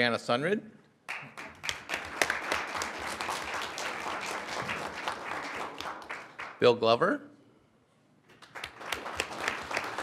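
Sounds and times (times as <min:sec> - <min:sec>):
audience applauding: 0:01.1 - 0:06.6, 0:08.3 - 0:10.0.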